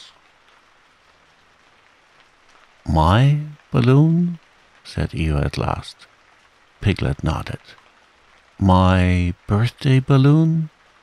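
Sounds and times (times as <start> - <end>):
gentle rain hiss: 0.0 - 11.0
man speaking: 2.9 - 6.1, 6.8 - 7.8, 8.6 - 10.7.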